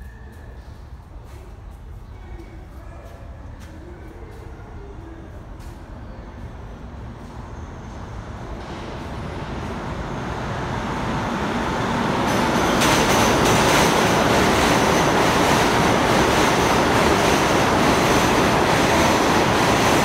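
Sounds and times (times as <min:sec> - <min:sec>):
subway train rumbling on rails: 0:00.0 - 0:20.0.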